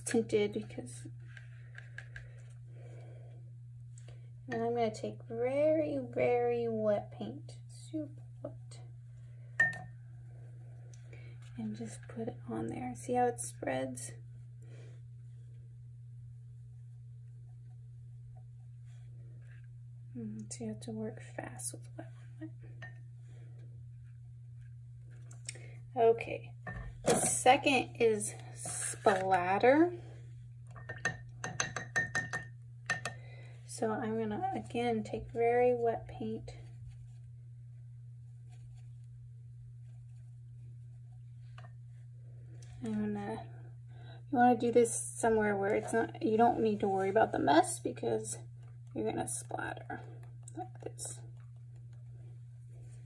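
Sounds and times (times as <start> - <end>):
steady low hum: 0.0 - 53.0
paintbrush clinking against glass jar: 30.7 - 33.2.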